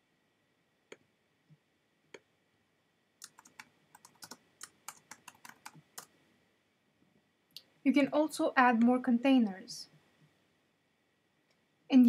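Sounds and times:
typing on computer keyboard: 3.2 - 6.1.

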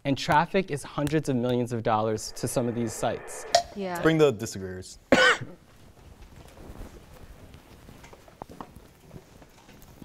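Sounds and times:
person coughing: 5.2 - 5.6.

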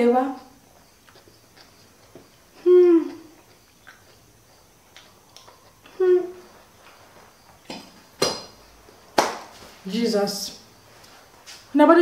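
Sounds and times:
chewing mouth sounds: 1.0 - 6.0
woman humming hmm: 2.6 - 3.4, 5.9 - 6.5.

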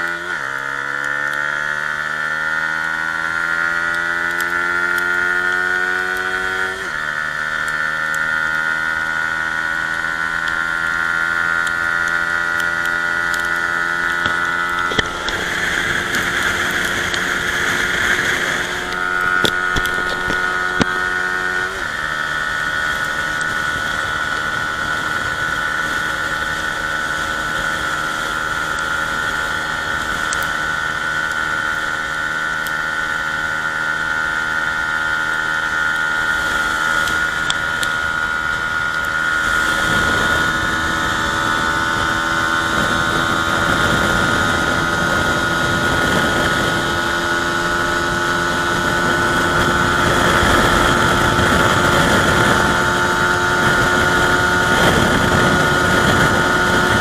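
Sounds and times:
motorcycle engine at full throttle: 0.0 - 57.0.

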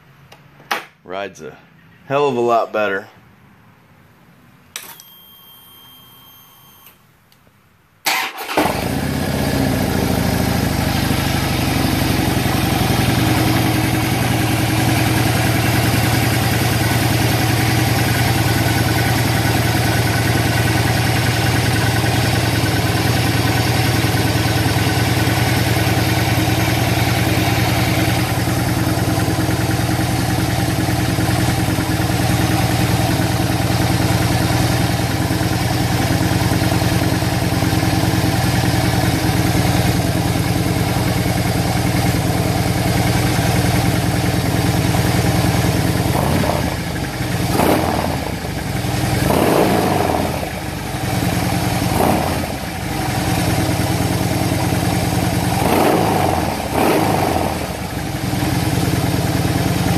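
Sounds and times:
motorcycle engine idling: 8.8 - 59.9
engine revving: 45.3 - 51.0, 51.6 - 53.4, 55.3 - 58.3.

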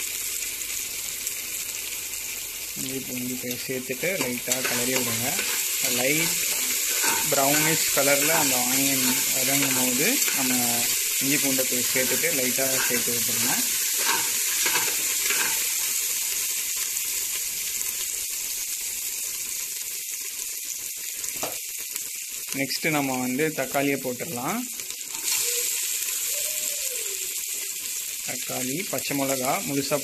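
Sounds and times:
onions sizzling in oil: 0.0 - 30.0.

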